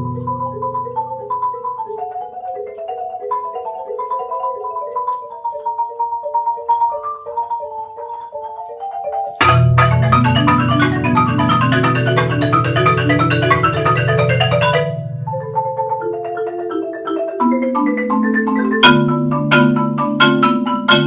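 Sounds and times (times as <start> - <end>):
marimba duet: 0.0 - 21.0.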